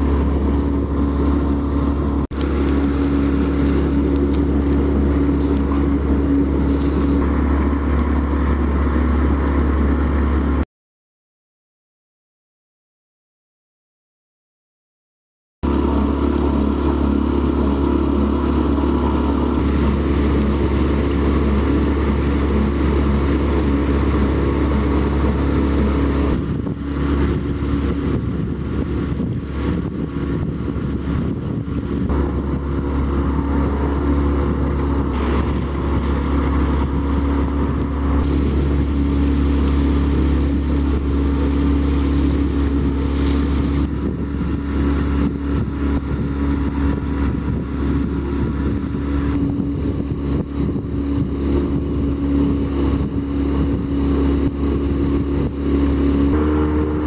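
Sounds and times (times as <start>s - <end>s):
boat engine running: 0.0s - 10.6s, 15.6s - 57.0s.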